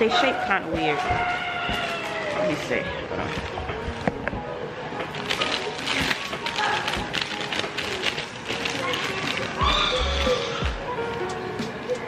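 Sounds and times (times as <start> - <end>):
background music: 0.0 - 12.0
plastic bag crinkling: 1.0 - 4.2, 4.9 - 11.2.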